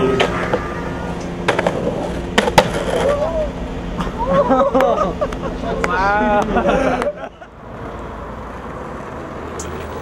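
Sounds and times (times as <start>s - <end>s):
skateboard clacking on concrete: 1.5s - 3.1s.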